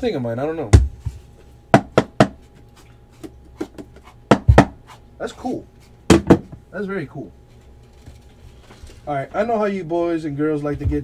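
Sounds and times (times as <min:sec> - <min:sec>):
knocks on cardboard box: 0:00.7 - 0:02.4, 0:03.2 - 0:04.8, 0:06.1 - 0:06.6.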